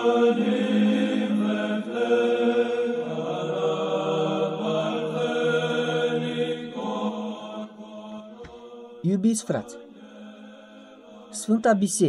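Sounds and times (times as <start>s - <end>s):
slow sung church chant: 0.0s - 12.0s.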